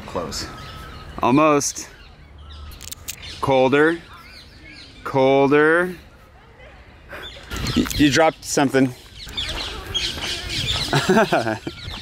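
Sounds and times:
outdoor background noise: 0.0 - 12.0
small birds chirping: 0.0 - 12.0.

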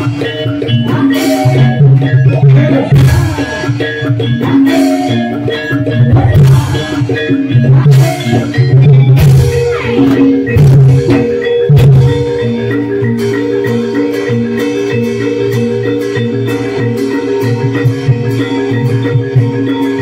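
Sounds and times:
gamelan music: 0.0 - 20.0
heavy drumming: 0.0 - 20.0
metallophone notes: 0.0 - 20.0.

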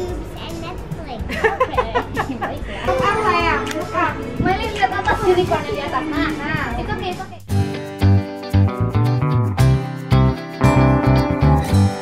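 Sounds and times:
child singing: 0.0 - 1.3
light backing track: 0.0 - 12.0.

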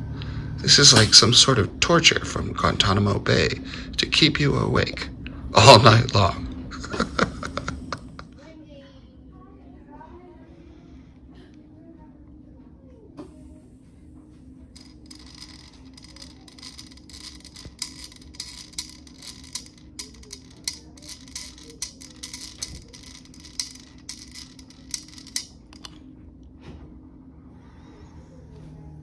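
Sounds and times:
steady low hum: 10.5 - 29.0
rapid irregular clicks and flutter: 14.8 - 25.9.

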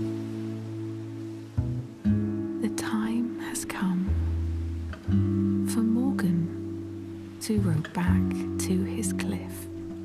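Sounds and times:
gentle lullaby music: 0.0 - 10.0
person narrating: 7.4 - 9.7.

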